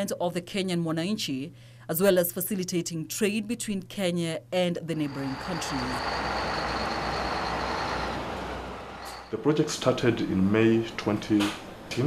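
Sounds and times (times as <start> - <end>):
thin high whine: 5.0 - 9.5
truck engine rumble: 5.0 - 11.9
road noise: 5.0 - 12.0.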